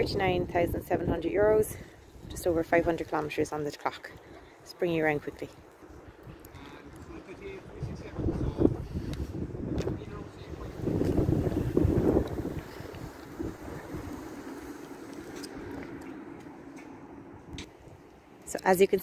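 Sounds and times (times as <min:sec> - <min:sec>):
wind buffeting microphone: 0:00.0 - 0:18.3.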